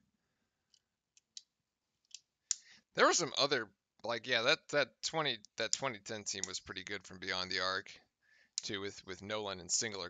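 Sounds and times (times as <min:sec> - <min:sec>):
person breathing: 0:02.5 - 0:03.0, 0:08.2 - 0:08.6
person speaking: 0:03.0 - 0:08.0, 0:08.6 - 0:10.0.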